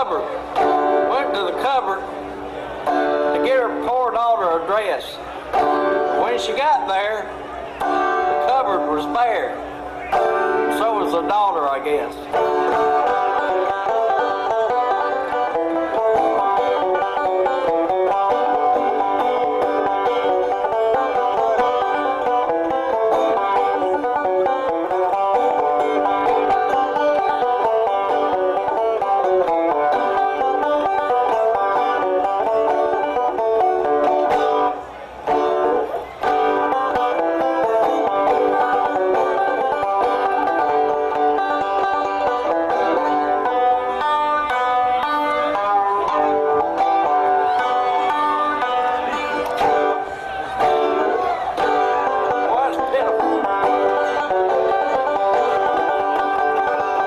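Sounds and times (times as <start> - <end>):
banjo plucking: 0.0 - 57.0.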